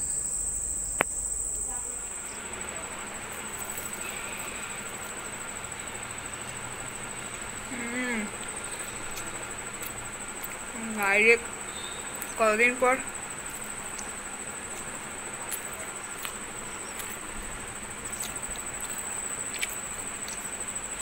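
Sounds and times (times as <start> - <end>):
crickets chirring: 0.0 - 21.0
person humming: 7.7 - 8.4.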